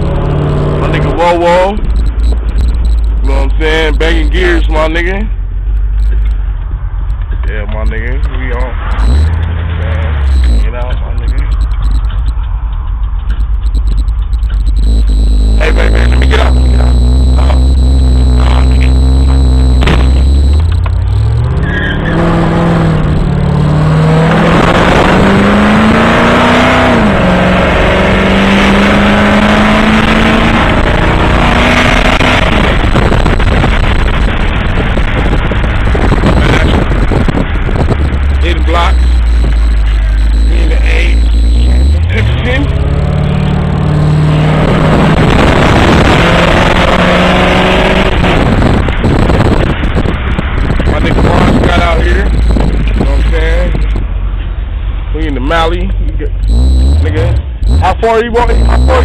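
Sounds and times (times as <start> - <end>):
car engine accelerating through gears: 0.0 - 4.6, 8.3 - 12.3, 13.4 - 54.0, 56.4 - 59.0.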